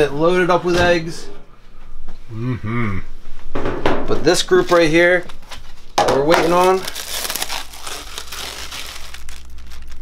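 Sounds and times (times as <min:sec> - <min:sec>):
plastic sheet crinkling: 0:04.5 - 0:10.0.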